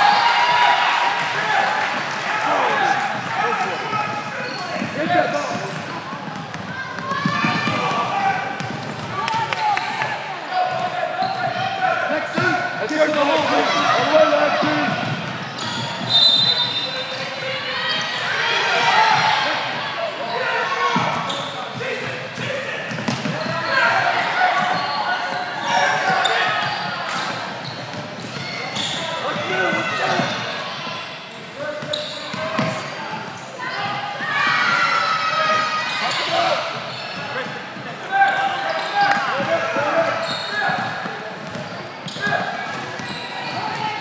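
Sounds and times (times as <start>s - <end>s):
voices and shouts echoing: 0.0s - 44.0s.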